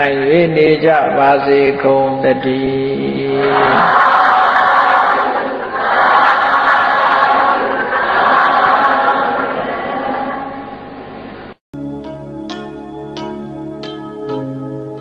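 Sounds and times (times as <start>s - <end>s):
man chanting: 0.0s - 3.9s.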